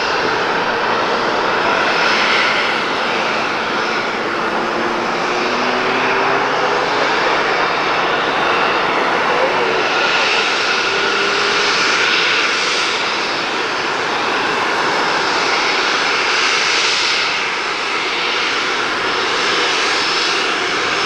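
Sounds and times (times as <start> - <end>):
jet engines rushing and whining: 0.0 - 21.0.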